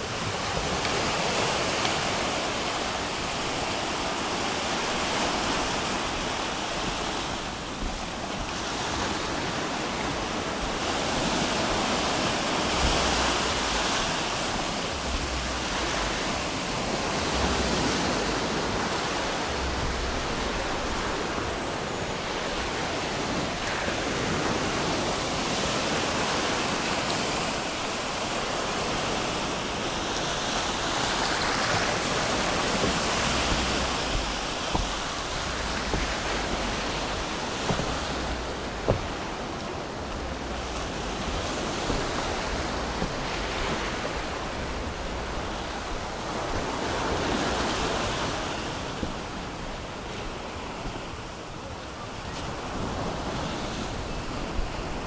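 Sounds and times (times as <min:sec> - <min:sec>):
sea waves washing on shore: 0:00.0 - 0:55.0.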